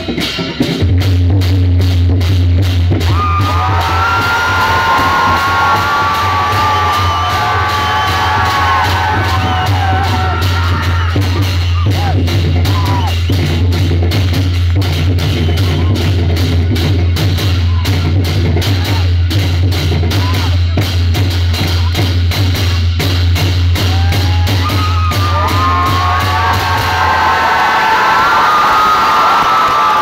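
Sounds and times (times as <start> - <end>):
barrel drums beaten fast: 0.0 - 28.1.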